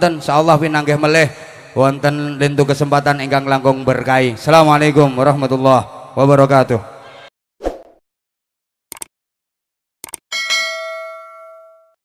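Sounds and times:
bright bell ding: 10.3 - 12.0.

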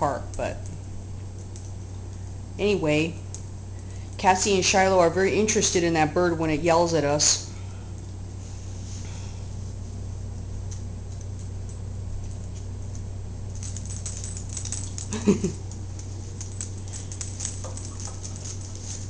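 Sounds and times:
steady low hum: 0.0 - 19.0
dog claws clicking on hard floor: 10.4 - 19.0
person laughing: 15.1 - 15.7.

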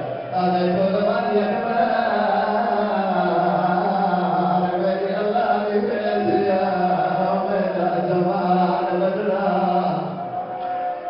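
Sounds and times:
man chanting over a microphone: 0.0 - 11.0.

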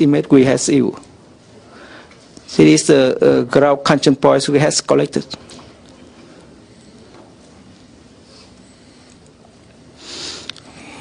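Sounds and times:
nose sniff: 10.0 - 10.6.

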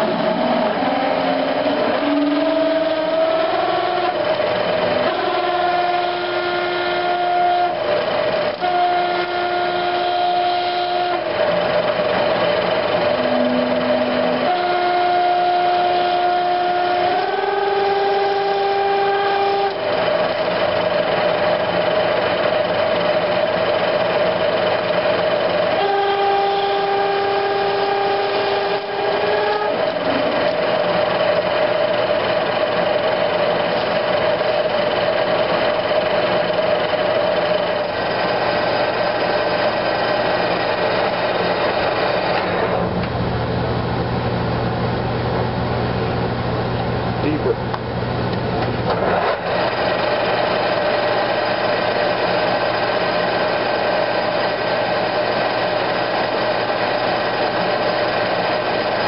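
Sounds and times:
drill squealing in plastic: 0.0 - 11.5, 25.7 - 31.4
lathe running with whine: 0.0 - 59.0.

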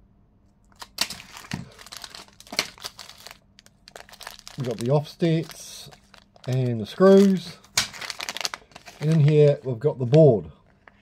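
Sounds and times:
plastic packaging crinkling: 0.7 - 11.0.

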